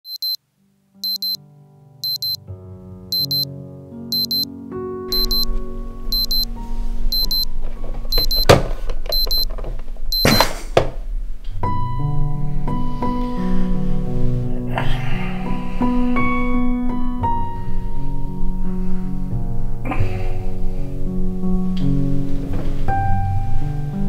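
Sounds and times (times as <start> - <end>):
alarm clock double beeps: 0.1 - 0.4, 1.0 - 1.4, 2.0 - 2.4, 3.1 - 3.5, 4.1 - 4.5, 5.1 - 5.5, 6.1 - 6.5, 7.1 - 7.5, 8.1 - 8.4, 9.1 - 9.4, 10.2 - 10.4.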